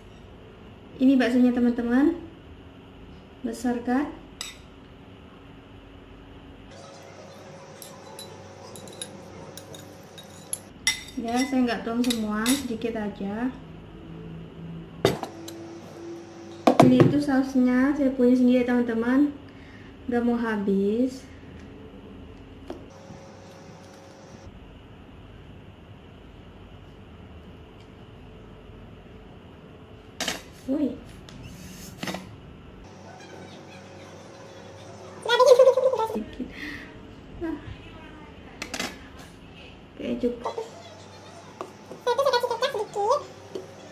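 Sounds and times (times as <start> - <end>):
glass bowl clinking on table: 7.8 - 12.6.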